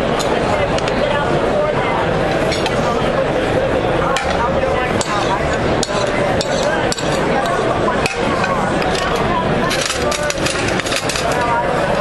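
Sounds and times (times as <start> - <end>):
crowd chatter in large hall: 0.0 - 12.0.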